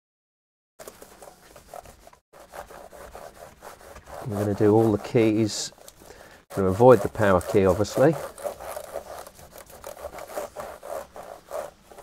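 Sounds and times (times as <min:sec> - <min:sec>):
cloth wiping keyboard keys: 0:00.8 - 0:12.0.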